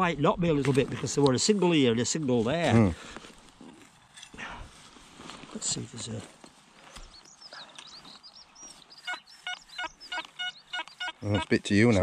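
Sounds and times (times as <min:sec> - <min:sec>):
birds chirping: 0:05.6 - 0:12.0.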